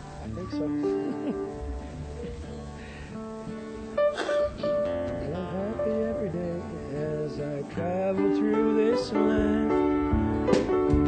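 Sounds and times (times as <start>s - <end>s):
strummed guitar chords: 0.0s - 11.0s.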